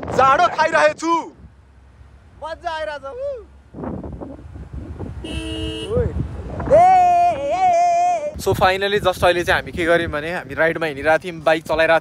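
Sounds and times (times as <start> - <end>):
wind rumble on microphone: 0.0 - 1.6, 3.6 - 12.0
vehicle horn: 5.2 - 6.2.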